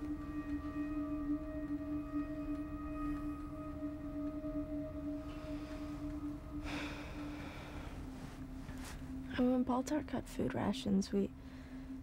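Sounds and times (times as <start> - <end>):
low pulsing drone: 0.0 - 12.0.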